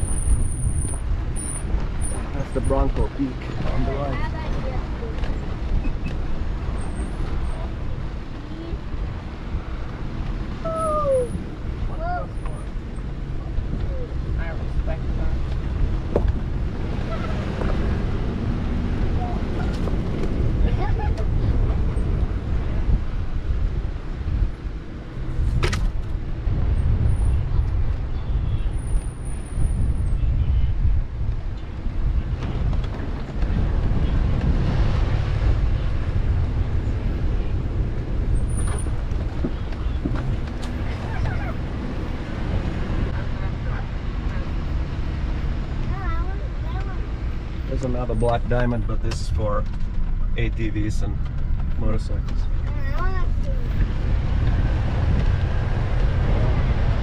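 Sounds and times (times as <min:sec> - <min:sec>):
engine and tyres rumbling on dirt: 0:00.0 - 0:57.0.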